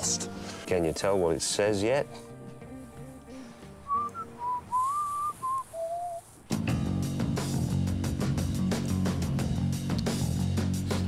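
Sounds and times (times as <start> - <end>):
soft background music: 0.0 - 5.8, 6.5 - 11.0
person whistling a tune: 3.9 - 6.3.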